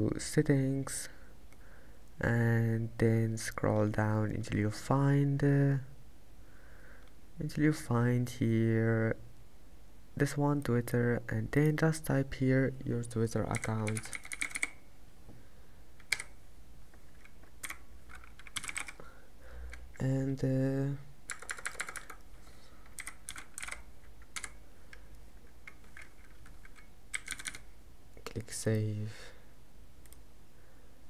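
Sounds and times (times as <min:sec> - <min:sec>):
low room noise: 0:00.0 - 0:31.0
typing on computer keyboard: 0:13.5 - 0:14.8, 0:16.0 - 0:16.4, 0:17.2 - 0:19.0, 0:21.3 - 0:22.2, 0:22.8 - 0:24.6, 0:25.6 - 0:27.7
computer mouse click: 0:16.0 - 0:16.4, 0:30.0 - 0:30.2.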